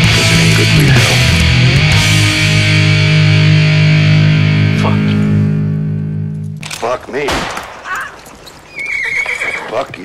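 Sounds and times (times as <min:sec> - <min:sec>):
loud band music: 0:00.0 - 0:04.1
voices: 0:09.0 - 0:10.0.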